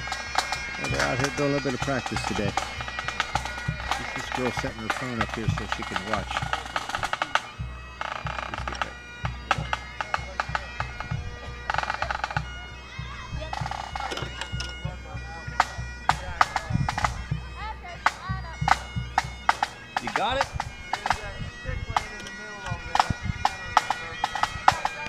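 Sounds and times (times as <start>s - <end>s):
bagpipes playing: 0.0s - 25.0s.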